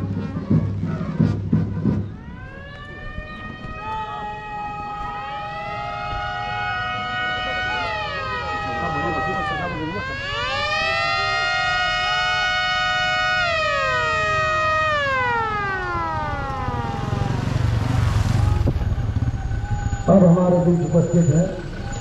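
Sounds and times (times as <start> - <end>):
police siren wailing: 2.1 - 22.0
engine rumble: 13.7 - 22.0.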